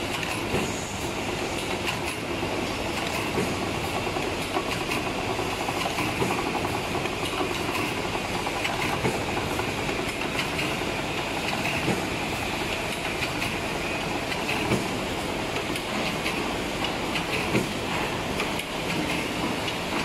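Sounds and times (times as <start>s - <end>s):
packing machine clatter: 1.5s - 15.0s.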